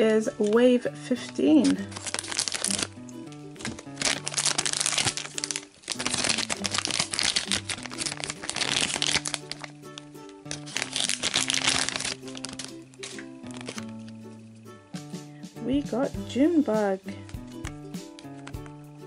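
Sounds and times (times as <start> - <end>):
background music: 0.0 - 19.0
plastic bag crinkling: 0.4 - 14.2.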